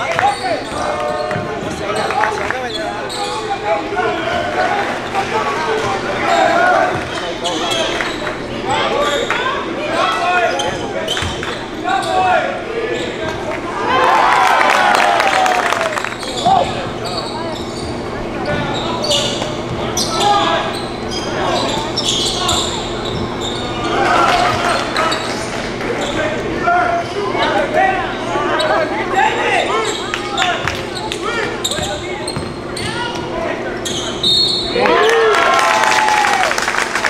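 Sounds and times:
sneaker squeaks: 0:00.0 - 0:13.5, 0:16.2 - 0:34.8
players calling out: 0:00.0 - 0:36.6.

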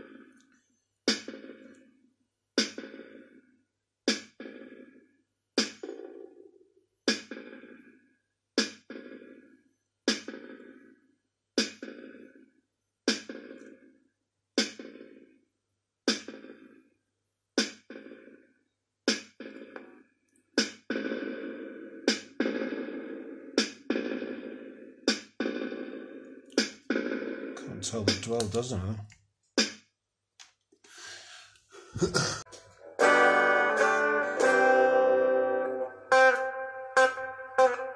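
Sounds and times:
drum machine hit with reverb: 0:26.6 - 0:28.7.

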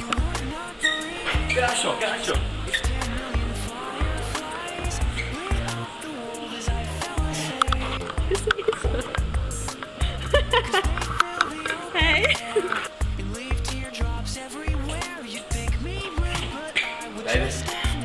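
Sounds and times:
music with heavy bass beat: 0:00.0 - 0:18.0
voice over music: 0:00.0 - 0:18.0.

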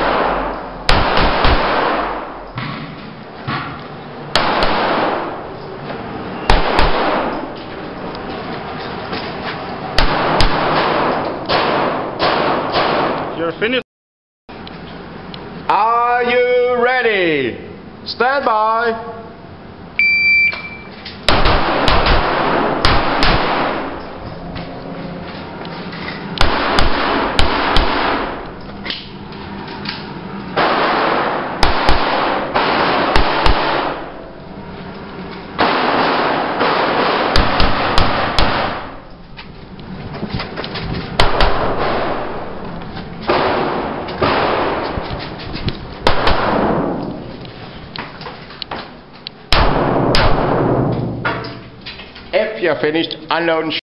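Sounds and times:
rapid gunshots echoing: 0:00.0 - 0:02.4, 0:04.3 - 0:05.6, 0:06.5 - 0:07.5, 0:10.0 - 0:13.3, 0:21.3 - 0:24.0, 0:26.4 - 0:28.5, 0:30.6 - 0:34.3, 0:35.6 - 0:39.1, 0:41.2 - 0:42.6, 0:43.2 - 0:45.1, 0:46.0 - 0:47.0, 0:49.5 - 0:50.9
short high timer beep: 0:20.0 - 0:20.9.

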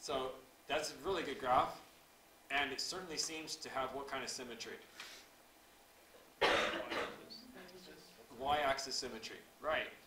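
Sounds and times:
person coughing: 0:06.4 - 0:07.4.

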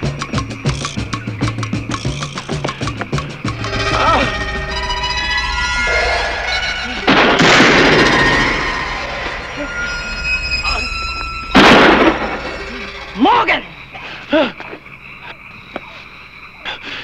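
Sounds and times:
eerie sustained music tones: 0:03.4 - 0:15.2
sudden loud crashes: 0:03.5 - 0:14.0.

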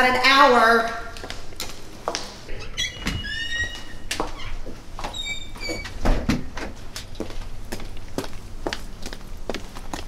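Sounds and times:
footsteps on hard floor: 0:01.2 - 0:02.5, 0:04.1 - 0:05.2
door being worked: 0:02.5 - 0:06.6.

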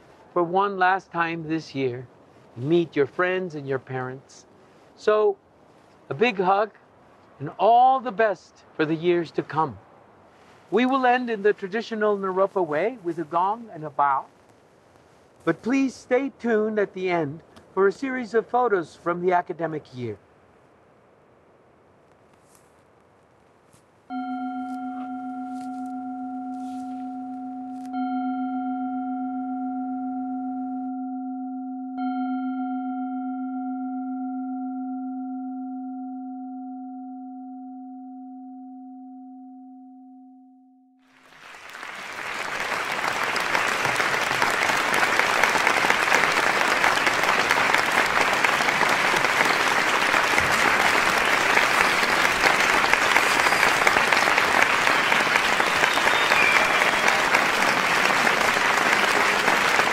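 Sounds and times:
applause: 0:41.0 - 0:59.9.

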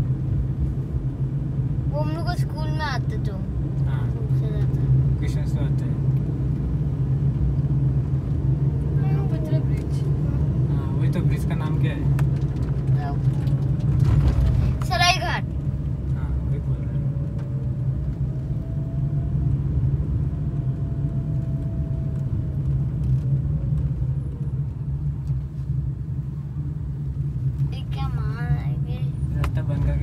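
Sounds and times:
car engine rumble from inside: 0:00.0 - 0:30.0
tyres on road: 0:00.0 - 0:30.0.

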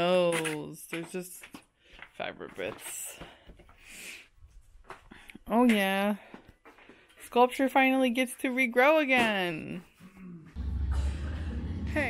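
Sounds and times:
steady low rumble: 0:10.6 - 0:12.0.

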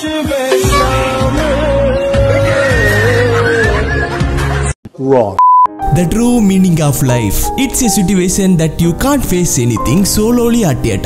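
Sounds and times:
heavy bass: 0:00.5 - 0:02.6
wavering melody: 0:00.5 - 0:03.3.

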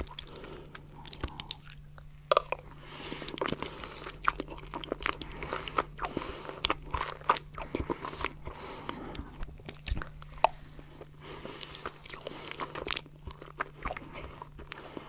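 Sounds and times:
wet chewing with clicks: 0:00.0 - 0:02.6, 0:03.2 - 0:15.0.

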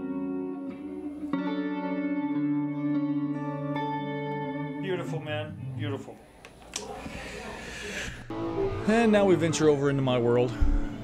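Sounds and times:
electric guitar with modulated pitch: 0:00.0 - 0:06.1, 0:08.3 - 0:09.5.

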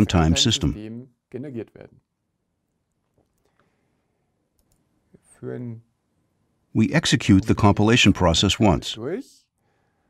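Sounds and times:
man speaking: 0:00.0 - 0:02.0, 0:06.8 - 0:09.4.

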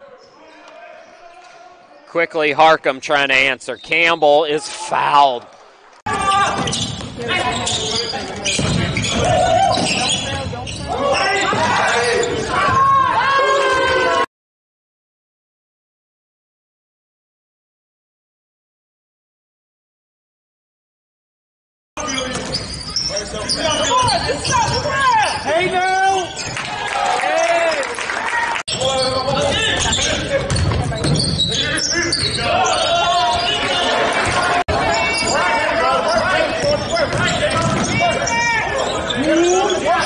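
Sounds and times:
spectators shouting and cheering: 0:00.0 - 0:14.3, 0:23.2 - 0:40.0.

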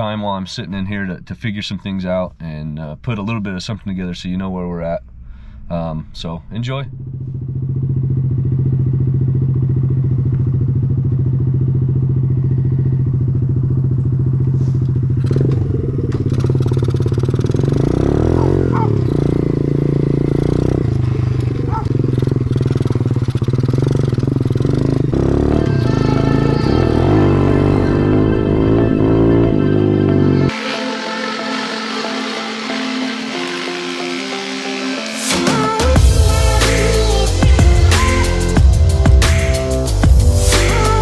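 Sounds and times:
motorbike engine idling and revving: 0:05.0 - 0:30.6, 0:35.6 - 0:41.0.

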